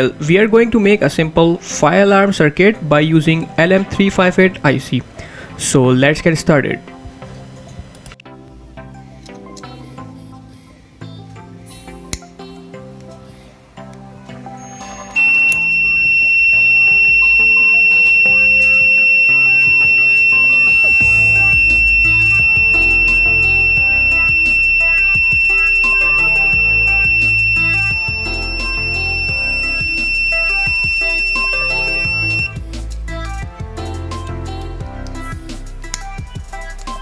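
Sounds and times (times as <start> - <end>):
high-pitched alarm buzzer tone: 14.8 - 32.6.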